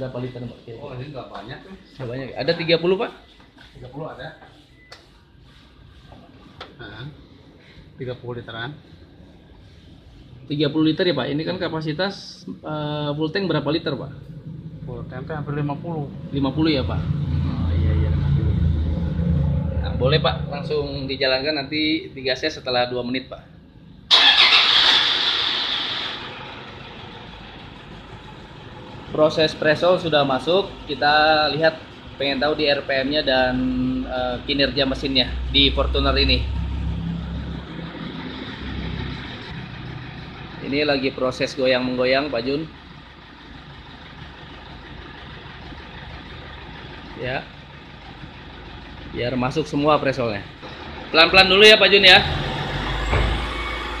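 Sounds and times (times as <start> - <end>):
diesel engine idling: 13.0 - 54.0.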